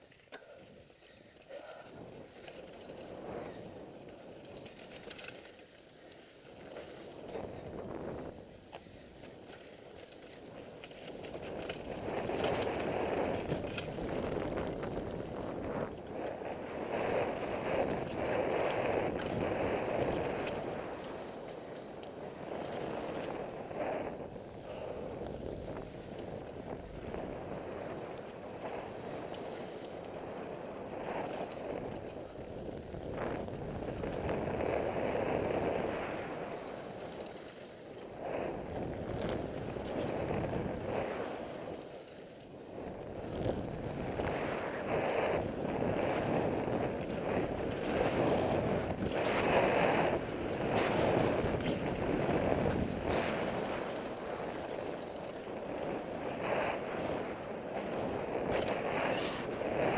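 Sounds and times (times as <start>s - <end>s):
bike rattling: 0.0s - 59.9s
bike tyres crunching over stones: 2.0s - 59.9s.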